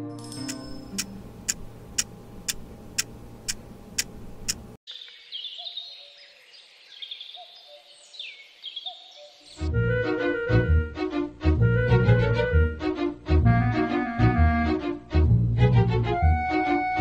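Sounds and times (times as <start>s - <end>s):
clock ticking: 0.4s - 4.8s
low hum: 0.5s - 4.8s
birdsong chirps and whistles: 4.9s - 9.7s.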